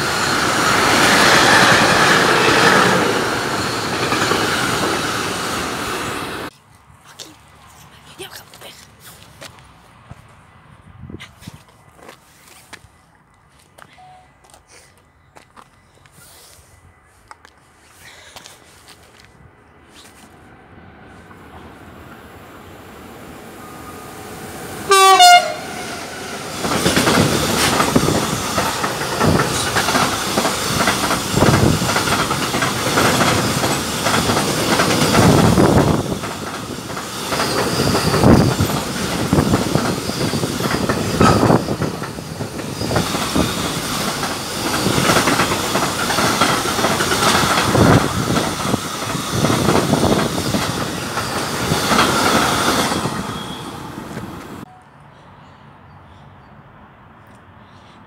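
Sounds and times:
freight train passing: 0.0 - 6.5, 9.4 - 58.0
locomotive horn blast: 24.9 - 26.2.

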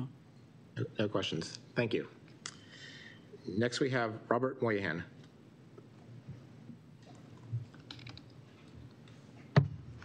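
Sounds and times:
typing on laptop keyboard: 7.6 - 8.4.

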